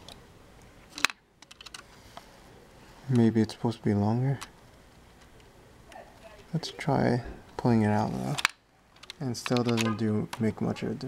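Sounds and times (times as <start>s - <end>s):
plastic bricks clicking: 0.9s - 1.9s, 8.4s - 9.9s.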